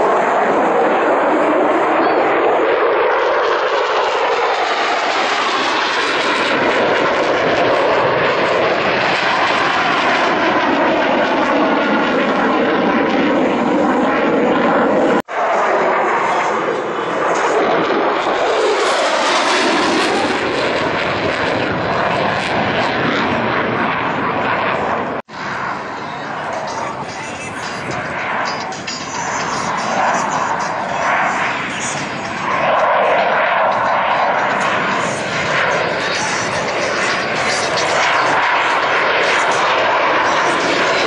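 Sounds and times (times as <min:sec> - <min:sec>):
jet engine roaring: 0:00.0 - 0:41.0.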